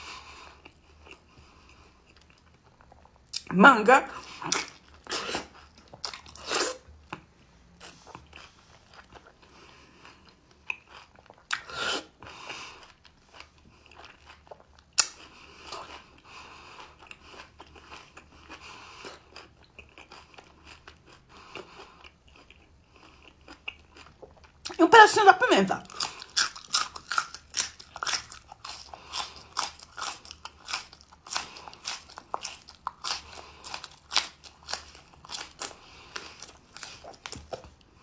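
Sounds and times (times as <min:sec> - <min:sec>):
chewing: 0:00.0 - 0:03.5, 0:04.2 - 0:24.8, 0:25.8 - 0:38.0.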